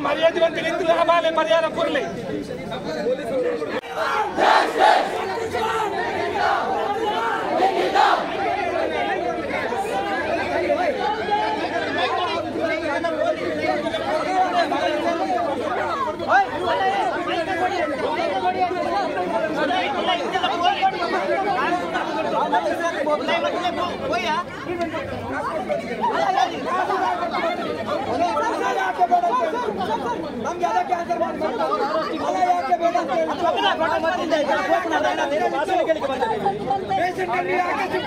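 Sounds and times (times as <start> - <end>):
crowd talking and shouting: 0.0 - 38.0.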